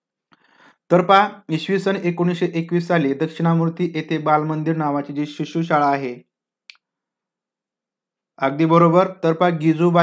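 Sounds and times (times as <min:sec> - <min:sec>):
person speaking: 0:00.9 - 0:06.3.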